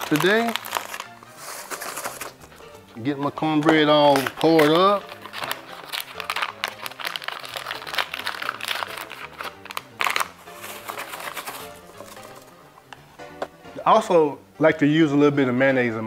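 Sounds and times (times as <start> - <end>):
paper packet tearing and crinkling: 0.0 - 2.5, 3.6 - 12.6
soft background music: 0.0 - 16.0.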